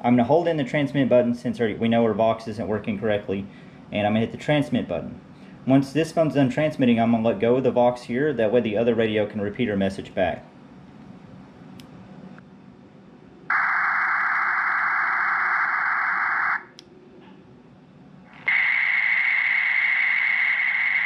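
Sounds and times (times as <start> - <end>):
steady tone: 13.3 - 16.8.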